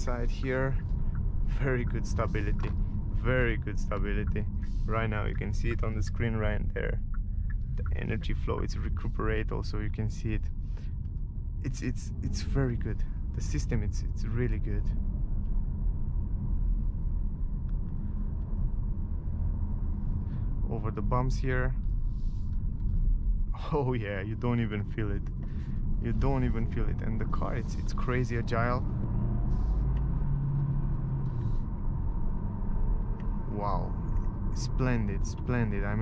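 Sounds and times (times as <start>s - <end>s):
faint drivetrain hum: 0.0s - 36.0s
road and tyre rumble in car: 0.0s - 36.0s.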